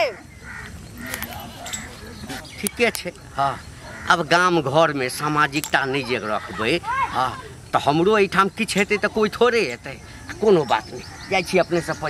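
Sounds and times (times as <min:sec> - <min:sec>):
faint bird calls: 0:00.0 - 0:07.7.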